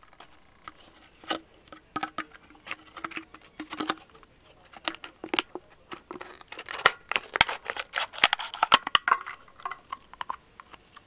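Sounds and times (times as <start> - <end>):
scissors snipping plastic bottle: 4.8 - 9.1.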